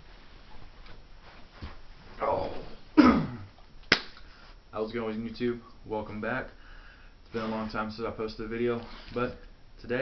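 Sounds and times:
single sharp hand clap: 0:03.8 - 0:04.2.

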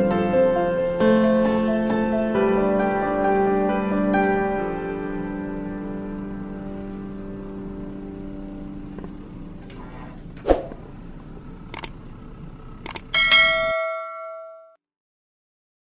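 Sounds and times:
soft piano music: 0:00.0 - 0:09.6
mouse clicks: 0:12.9 - 0:13.1
notification bell ding: 0:13.2 - 0:14.8.

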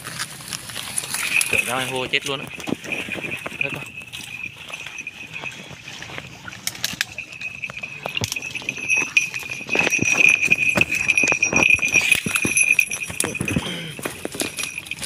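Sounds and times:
branches and twigs rustling and crackling: 0:00.0 - 0:15.0
high-pitched ringing drone: 0:01.0 - 0:15.0.

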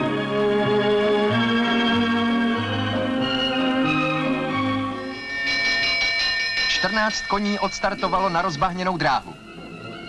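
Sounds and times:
bell ringing: 0:05.0 - 0:09.5.

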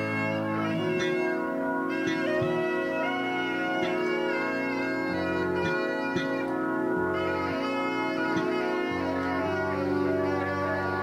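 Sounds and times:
reedy organ-like chords: 0:00.0 - 0:11.0.

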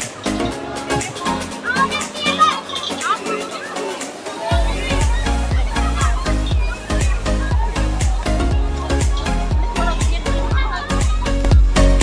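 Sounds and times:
children chattering: 0:00.0 - 0:12.0
music: 0:00.0 - 0:12.0.

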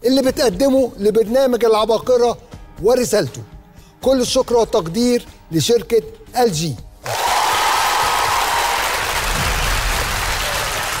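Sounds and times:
audience applause: 0:07.0 - 0:11.0.

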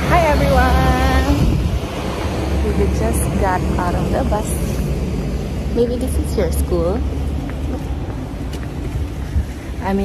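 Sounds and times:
wind buffeting microphone: 0:00.0 - 0:10.0
woman speaking: 0:00.1 - 0:01.4, 0:02.6 - 0:04.8, 0:05.7 - 0:07.1, 0:09.8 - 0:10.0.

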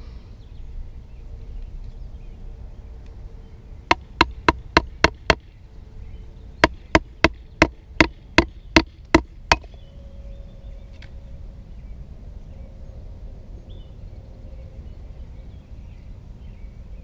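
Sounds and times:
baton knocking on knife spine: 0:08.8 - 0:09.7.

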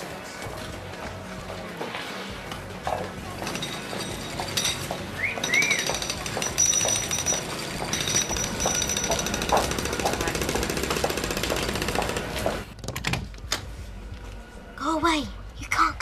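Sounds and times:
market crowd chatter: 0:00.0 - 0:12.7.

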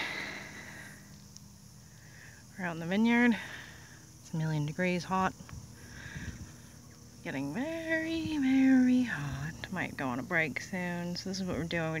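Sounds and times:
low steady hum: 0:00.0 - 0:12.0
outdoor background hiss: 0:00.0 - 0:12.0.

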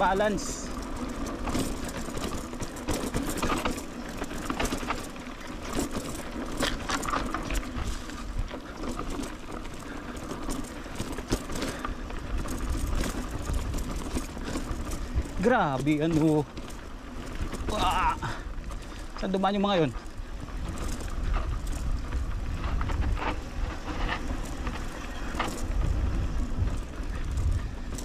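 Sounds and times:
bike rattling: 0:00.0 - 0:28.0
steady rumble: 0:00.0 - 0:28.0
tyres crunching on dirt: 0:00.0 - 0:28.0.

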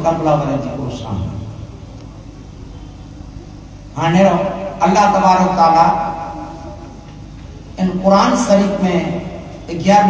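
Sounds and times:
low rumble of background noise: 0:00.0 - 0:10.0.

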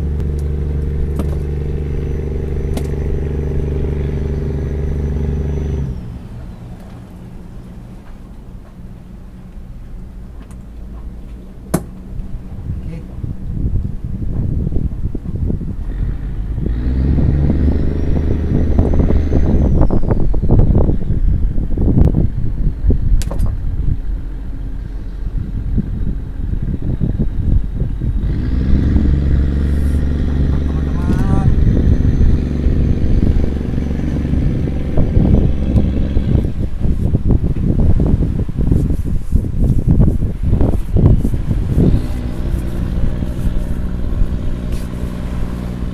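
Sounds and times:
engine running: 0:00.0 - 0:14.9, 0:15.5 - 0:45.9
sharp knocks: 0:11.7 - 0:12.0.

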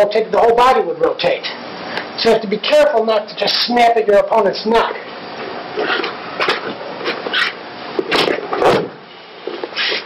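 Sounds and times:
body thudding on mat: 0:08.0 - 0:09.0.

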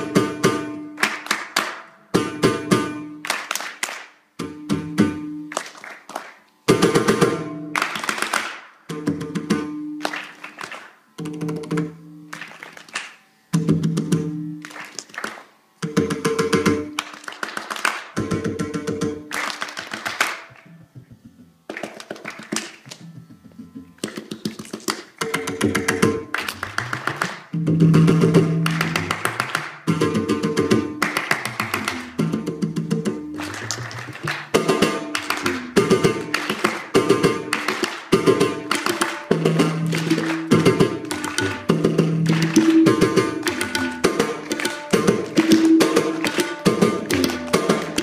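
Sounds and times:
hand drum strokes: 0:11.2 - 0:12.1, 0:13.5 - 0:14.5, 0:20.5 - 0:48.0.

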